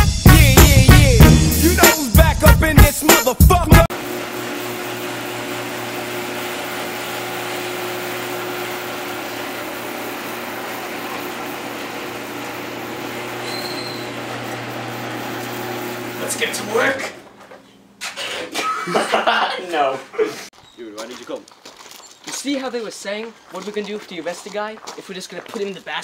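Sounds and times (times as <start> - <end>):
garage door opener humming: 3.9 - 18.0.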